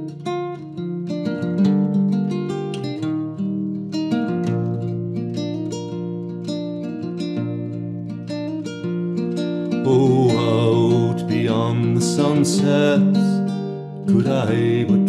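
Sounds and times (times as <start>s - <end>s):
plucked classical guitar: 0.0s - 15.0s.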